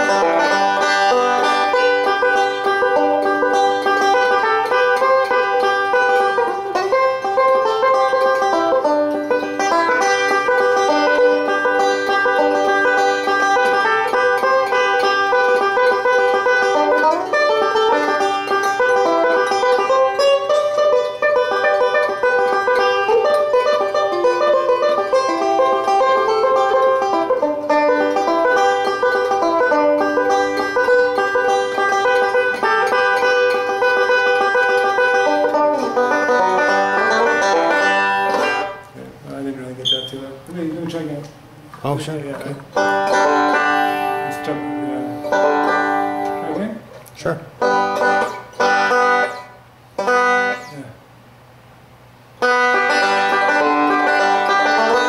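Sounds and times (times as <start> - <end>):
banjo picking bluegrass: 0.0 - 51.0, 52.2 - 55.0.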